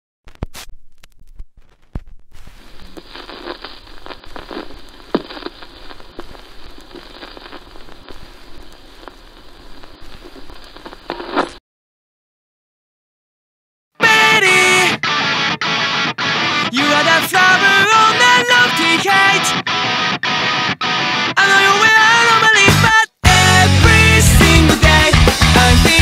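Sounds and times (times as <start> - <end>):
vinyl crackle and hiss: 0.3 - 11.6, 14.0 - 22.6.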